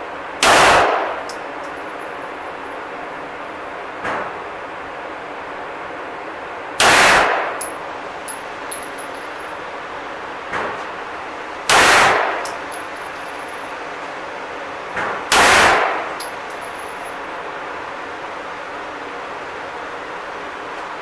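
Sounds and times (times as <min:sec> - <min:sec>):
pistol shots with echo: 0:00.4 - 0:01.2, 0:06.8 - 0:07.6, 0:11.7 - 0:12.5, 0:15.3 - 0:16.2.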